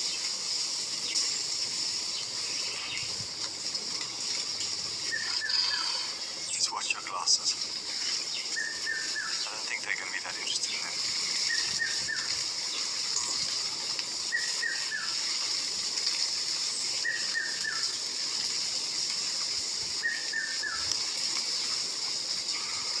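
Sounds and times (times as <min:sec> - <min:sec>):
steady high hiss: 0:00.0 - 0:23.0
bird whistling: 0:05.0 - 0:06.2, 0:08.5 - 0:09.4, 0:11.4 - 0:12.3, 0:14.3 - 0:15.2, 0:17.0 - 0:17.9, 0:20.0 - 0:20.8.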